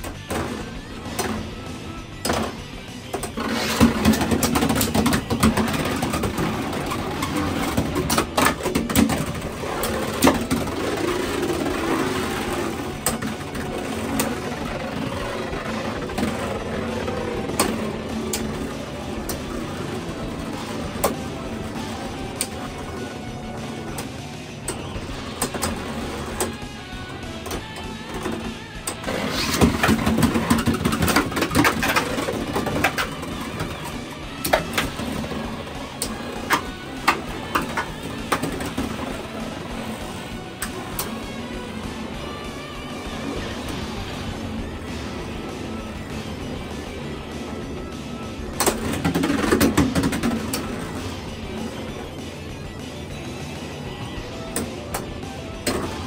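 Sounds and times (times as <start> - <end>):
spinning tops whirring and grinding: 0.0 - 56.0.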